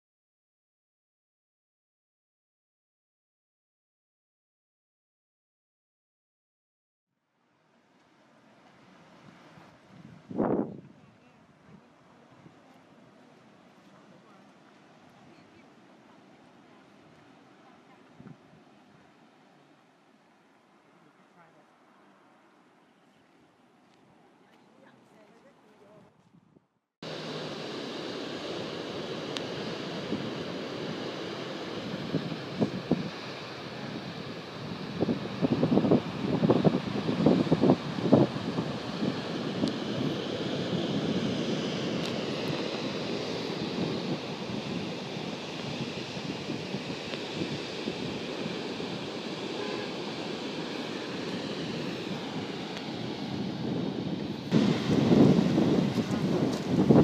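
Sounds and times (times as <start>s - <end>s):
wind buffeting the microphone: 9.1s - 12.7s, 18.1s - 18.7s, 27.2s - 57.0s
ocean surf: 27.0s - 57.0s.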